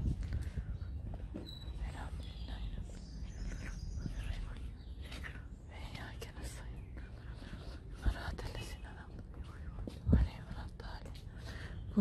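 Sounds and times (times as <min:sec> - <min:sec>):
person whispering: 0:01.8 - 0:12.0.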